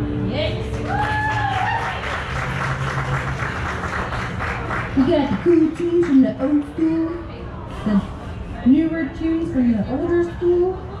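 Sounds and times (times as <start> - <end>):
audience applauding: 0.7 - 6.1.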